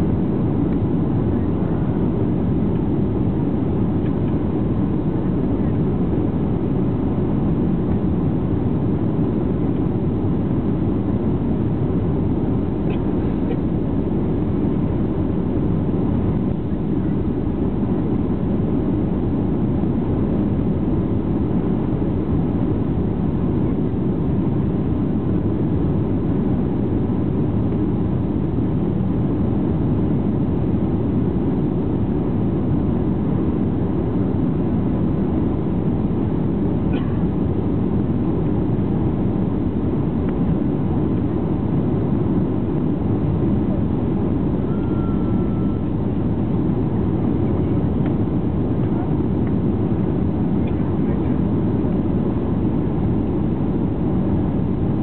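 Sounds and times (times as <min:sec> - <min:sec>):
airliner cabin engine rush: 0:00.0 - 0:55.0.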